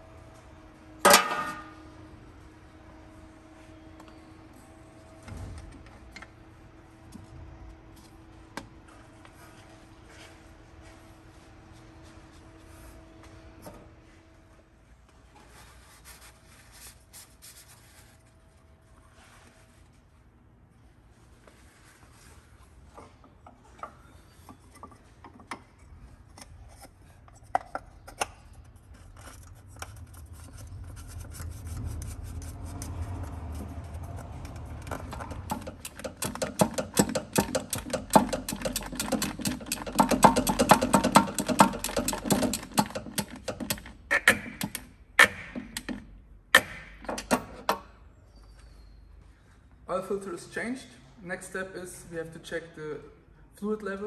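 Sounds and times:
ratchet wrench clicking: 0:35.2 - 0:44.8.

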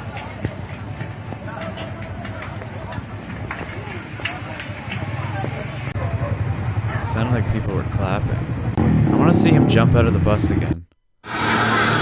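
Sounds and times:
distant voices: 0:00.0 - 0:10.5.

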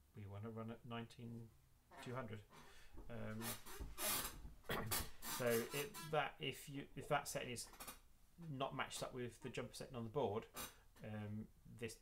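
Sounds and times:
man speaking: 0:00.2 - 0:02.5, 0:03.1 - 0:03.6, 0:04.7 - 0:07.7, 0:08.4 - 0:12.0.

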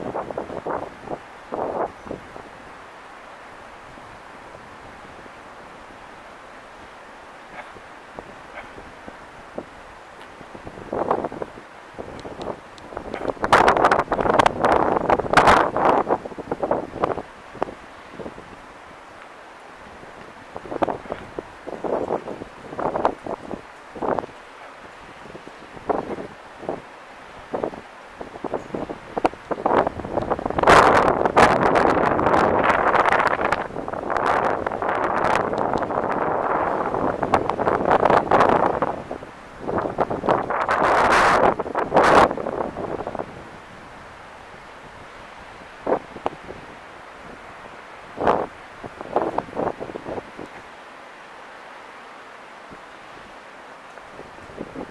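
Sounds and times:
wind buffeting microphone: 0:00.0 - 0:02.8, 0:03.5 - 0:19.0, 0:19.8 - 0:50.7, 0:54.0 - 0:54.9.

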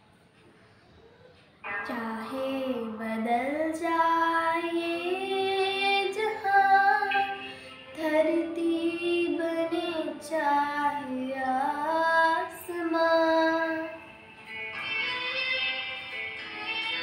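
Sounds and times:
girl singing devotional song: 0:01.8 - 0:14.2, 0:14.8 - 0:17.0.

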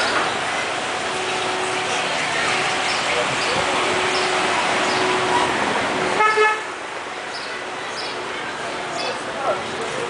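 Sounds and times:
car approaching: 0:00.0 - 0:10.0
people in background: 0:00.0 - 0:10.0
traffic: 0:00.0 - 0:10.0.

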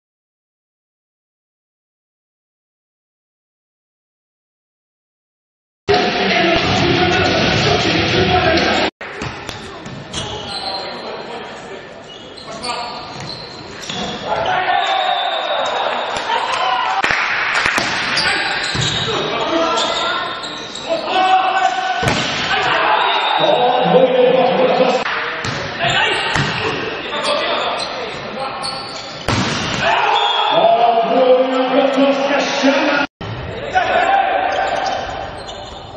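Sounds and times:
volleyball struck with sharp slap: 0:17.0 - 0:19.0, 0:22.0 - 0:22.7, 0:26.3 - 0:26.7, 0:29.3 - 0:29.9
players shouting: 0:17.9 - 0:25.0, 0:25.7 - 0:28.2, 0:29.5 - 0:35.4.

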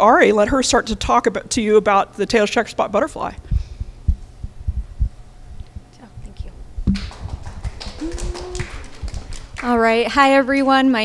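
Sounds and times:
microphone handling thumps: 0:03.4 - 0:07.8.

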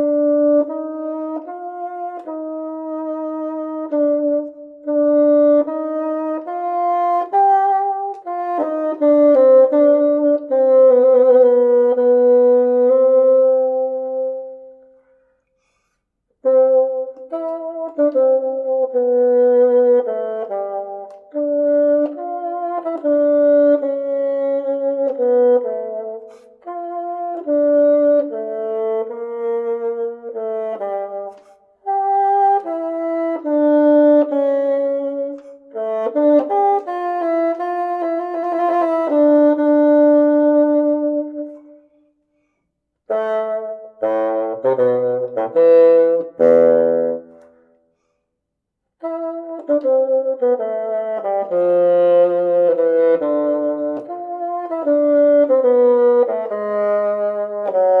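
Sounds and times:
solo bassoon melody: 0:00.0 - 0:58.0.

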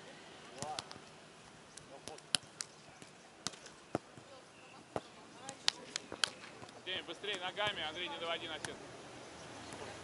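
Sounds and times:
hands slapping volleyball: 0:00.5 - 0:01.1, 0:01.7 - 0:04.3, 0:04.9 - 0:07.8, 0:08.6 - 0:08.8.

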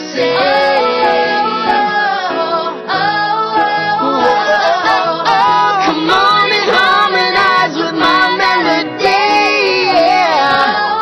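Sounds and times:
pop music backing: 0:00.0 - 0:11.0.

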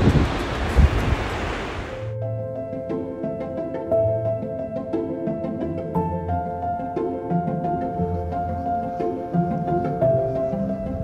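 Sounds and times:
surf breaking on beach: 0:00.0 - 0:02.1
wind rumbling on microphone: 0:00.0 - 0:02.1, 0:09.5 - 0:11.0.

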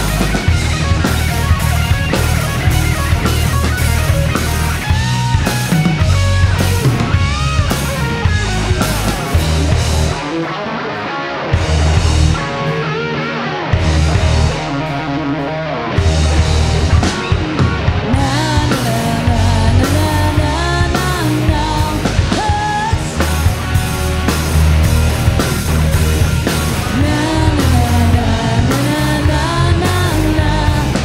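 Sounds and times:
lead guitar line: 0:00.0 - 0:31.0
rock band playing: 0:00.0 - 0:31.0.

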